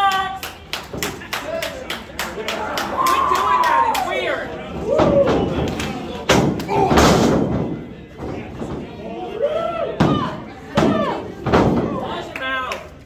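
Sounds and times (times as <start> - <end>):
shouted voices: 1.4 - 6.0, 6.6 - 7.2, 9.0 - 12.7
bodies slamming onto ring boards: 6.2 - 9.0.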